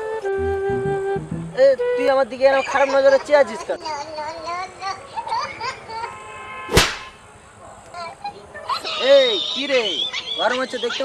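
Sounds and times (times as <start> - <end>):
sharp whoosh swish: 6.7 - 7.2.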